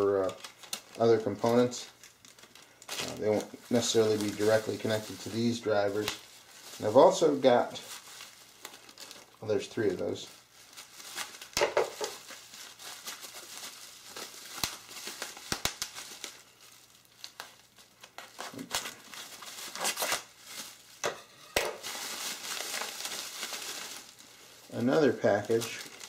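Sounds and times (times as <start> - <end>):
bubble wrap crinkling: 0.0 - 26.0.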